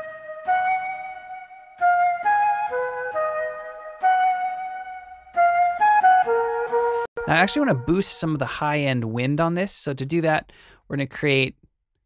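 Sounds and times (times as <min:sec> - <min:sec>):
synthesized flute melody: 0:00.0 - 0:08.8.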